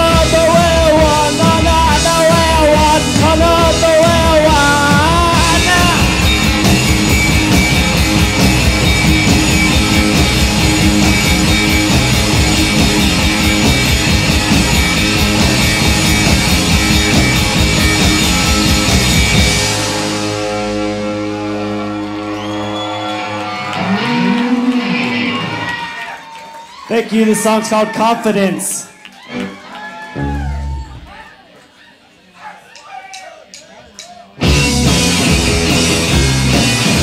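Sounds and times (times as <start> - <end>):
drum kit: 0.0 - 25.5, 34.0 - 37.0
bass guitar: 0.0 - 25.8, 29.3 - 31.1, 34.4 - 37.0
electric guitars: 0.0 - 26.1, 29.1 - 31.1, 34.4 - 37.0.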